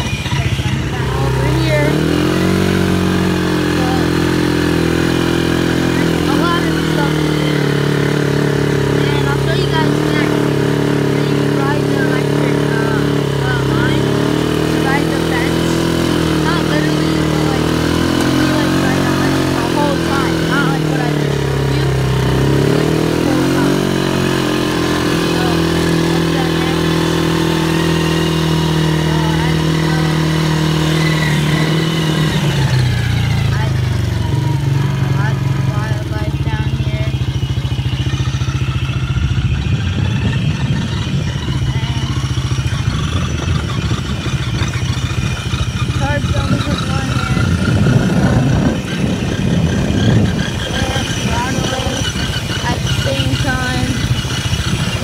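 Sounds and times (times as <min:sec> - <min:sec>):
quad bike engine running: 0:00.0 - 0:55.0.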